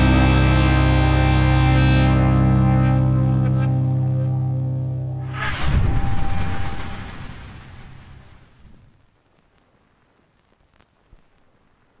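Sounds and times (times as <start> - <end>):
distorted electric guitar chord: 0.0 - 7.2.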